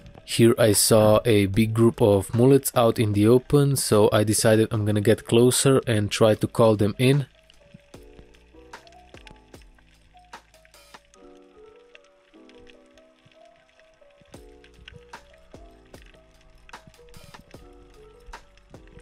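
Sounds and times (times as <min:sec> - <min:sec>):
soft background music: 0:00.0 - 0:19.0.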